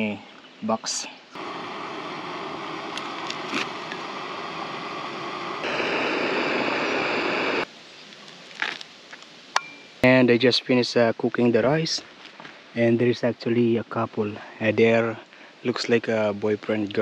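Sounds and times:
camp stove hissing: 1.4s - 7.7s.

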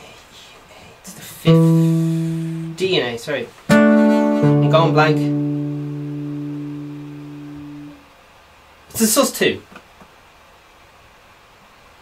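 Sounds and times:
acoustic guitar chord: 1.5s - 2.9s, 3.7s - 8.0s.

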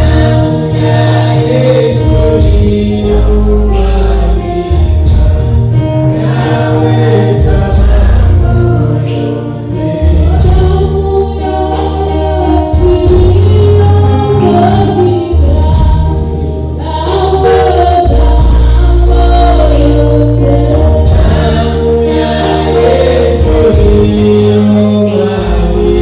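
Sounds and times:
bass line: 0.0s - 26.0s
electronic keyboard: 0.0s - 26.0s
voices singing gospel music: 0.0s - 26.0s.

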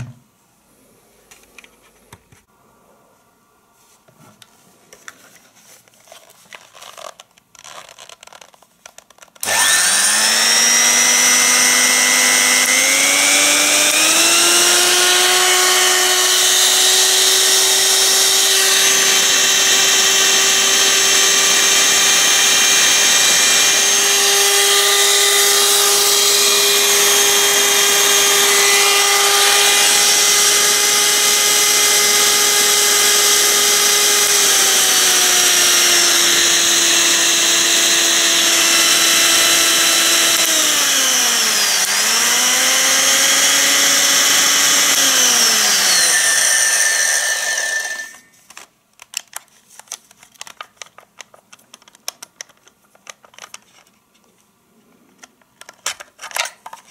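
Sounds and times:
electric hand mixer motor whine: 9.4s - 48.3s.

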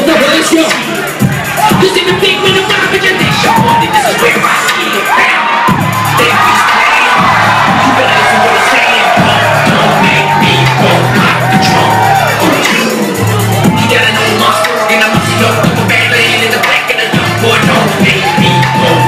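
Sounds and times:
crowd cheering and shouting: 0.0s - 19.0s
heavy bass: 0.0s - 19.0s
hip-hop beat over pa: 0.0s - 19.0s.

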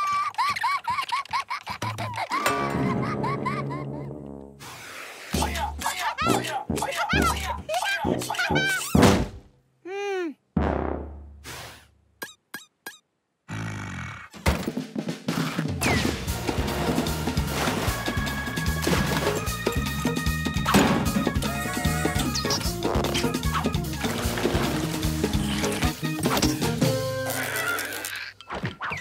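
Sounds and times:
cartoon character vocalisations: 5.4s - 9.0s, 9.8s - 10.4s, 21.4s - 23.8s, 27.2s - 28.3s.

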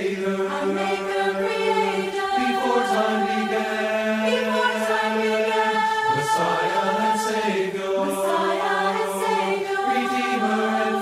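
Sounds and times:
choir singing a hymn: 0.0s - 11.0s.

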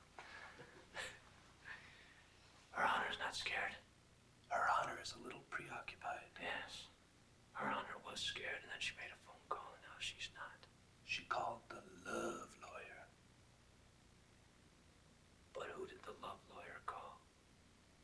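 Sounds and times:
person whispering: 2.7s - 3.9s, 4.5s - 7.0s, 7.6s - 13.1s, 15.5s - 17.2s.

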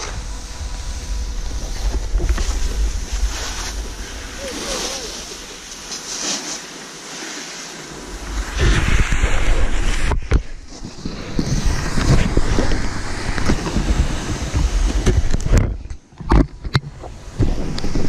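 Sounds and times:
wind rushing over microphone: 0.0s - 6.7s, 7.8s - 18.0s
snowboard scraping over snow: 0.0s - 16.0s, 16.6s - 18.0s.

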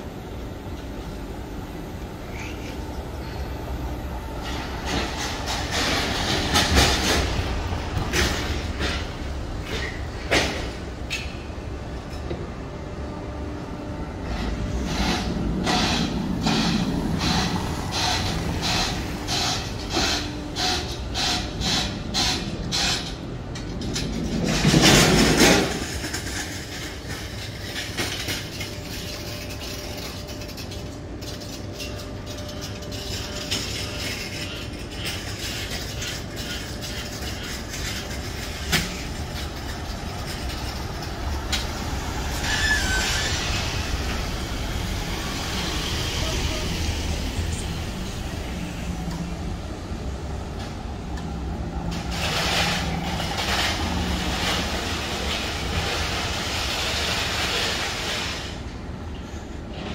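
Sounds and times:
low traffic rumble: 0.0s - 59.9s.

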